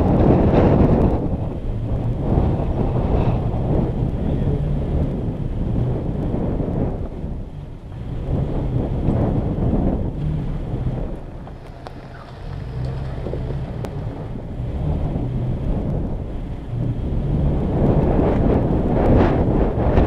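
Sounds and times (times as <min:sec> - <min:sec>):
truck engine running: 0:00.0 - 0:20.0
wind buffeting microphone: 0:00.0 - 0:20.0
tyres rolling over gravel: 0:10.1 - 0:15.0.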